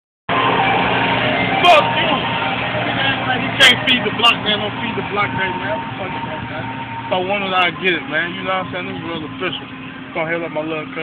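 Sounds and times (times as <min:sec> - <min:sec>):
truck driving past: 0:00.3 - 0:11.0.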